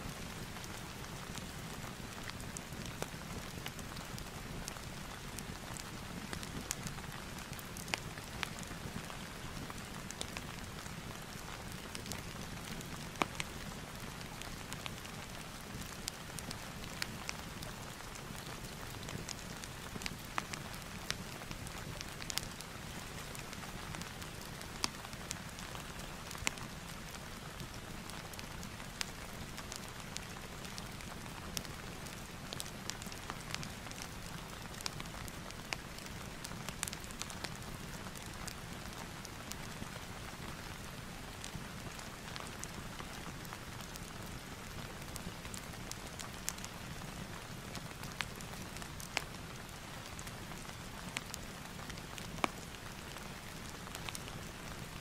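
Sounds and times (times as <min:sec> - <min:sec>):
steady rain: 0:00.0 - 0:55.0
fireplace crackling: 0:00.1 - 0:55.0.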